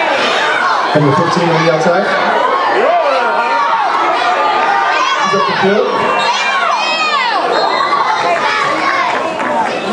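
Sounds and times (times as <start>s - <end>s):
crowd cheering and screaming: 0.0s - 9.9s.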